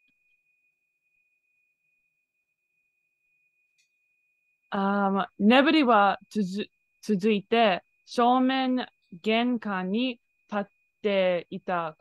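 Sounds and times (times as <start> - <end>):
faint high-pitched tone: 0.0 - 12.0.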